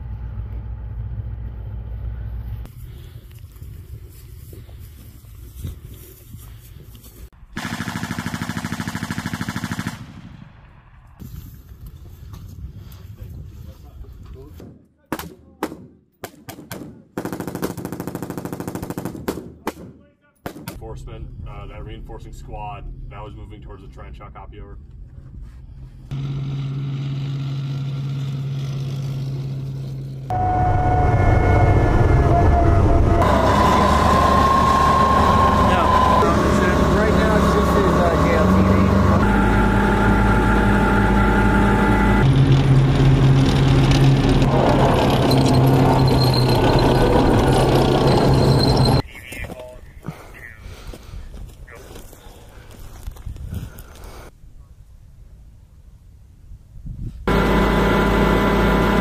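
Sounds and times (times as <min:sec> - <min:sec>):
armoured vehicle engine drone: 0:00.0 - 0:03.4, 0:20.8 - 0:49.1, 0:57.2 - 0:59.0.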